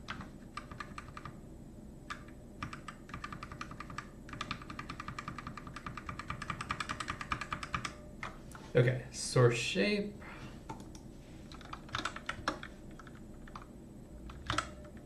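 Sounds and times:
typing on computer keyboard: 0.0 - 1.4, 2.1 - 8.4, 10.7 - 15.0.

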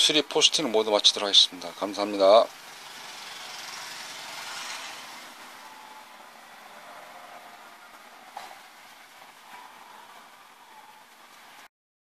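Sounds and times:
faint background hiss: 0.0 - 11.7.

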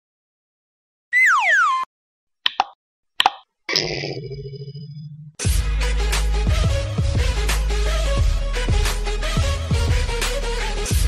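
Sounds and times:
cartoon pops: 1.1 - 1.9, 2.5 - 4.5.

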